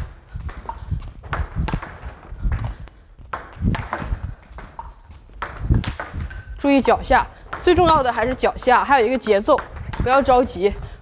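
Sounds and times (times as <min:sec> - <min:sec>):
table tennis ball clicking off rackets: 0:00.4 - 0:10.5
ball bouncing on table: 0:03.3 - 0:10.5.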